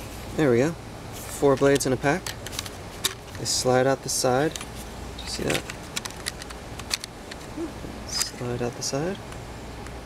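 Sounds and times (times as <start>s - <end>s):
plastic razor cartridges clicking: 5.3s - 7.4s.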